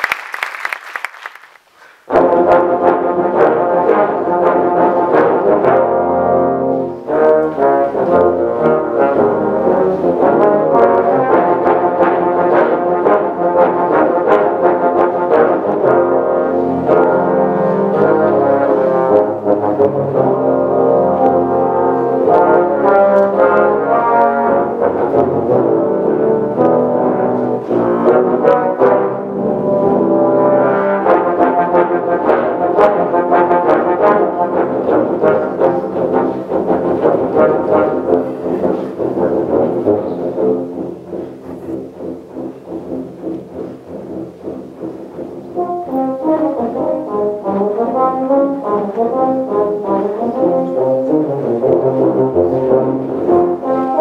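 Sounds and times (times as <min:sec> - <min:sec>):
tuba and euphonium ensemble: 0:02.0 - 0:54.0.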